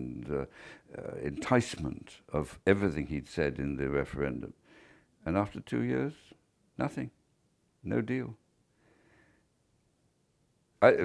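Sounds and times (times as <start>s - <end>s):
man speaking: 0.0s - 4.6s, 5.2s - 7.2s, 7.8s - 8.4s.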